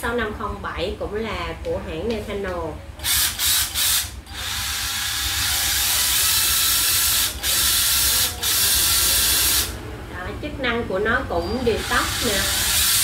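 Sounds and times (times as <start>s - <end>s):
cordless drill whirring: 3.0s - 9.8s, 11.8s - 13.0s.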